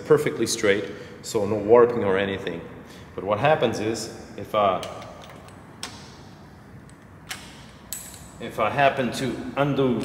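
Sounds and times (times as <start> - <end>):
workshop room tone: 0.0 - 10.0
wrench clicking on bolt: 6.8 - 8.4.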